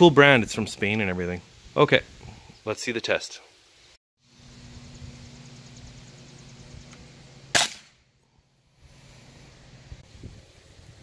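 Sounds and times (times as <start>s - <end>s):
steady low hum: 4.2s - 10.0s
pellet gun shot: 7.5s - 8.0s.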